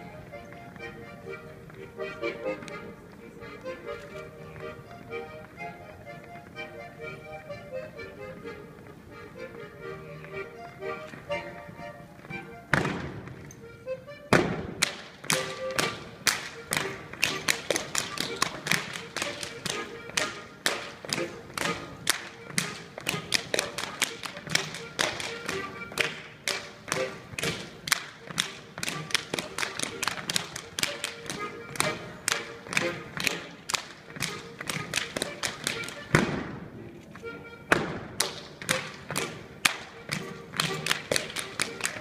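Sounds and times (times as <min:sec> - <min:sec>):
band music: 0:00.0 - 0:42.0
hand slaps and claps: 0:14.4 - 0:36.4, 0:37.7 - 0:42.0.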